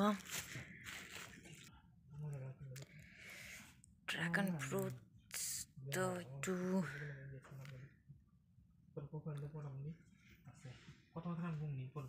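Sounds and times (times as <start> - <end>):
woman talking: 0.0 - 0.4, 4.1 - 7.0.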